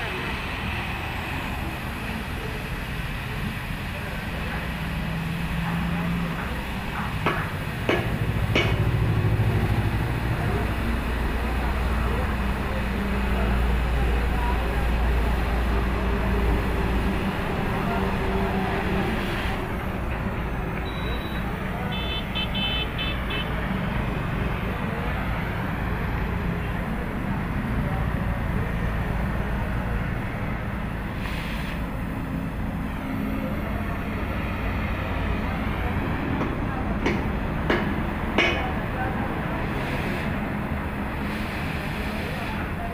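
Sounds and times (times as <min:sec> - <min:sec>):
road traffic: 0:00.0 - 0:42.9
beeping: 0:20.7 - 0:23.5
cutting torch hissing: 0:31.0 - 0:32.0, 0:39.6 - 0:40.4, 0:41.1 - 0:42.7.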